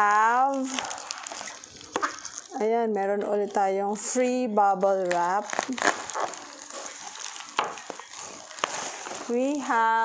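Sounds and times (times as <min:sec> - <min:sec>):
bubble wrap crackles: 0:00.0 - 0:10.0
bubble wrap rustling and crinkling: 0:00.0 - 0:10.0.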